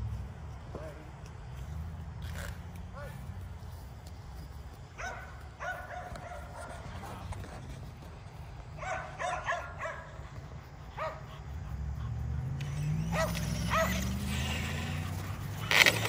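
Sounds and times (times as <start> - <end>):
dogs barking and yipping: 4.9 - 7.7, 8.6 - 16.0
toy truck motor humming: 11.8 - 16.0.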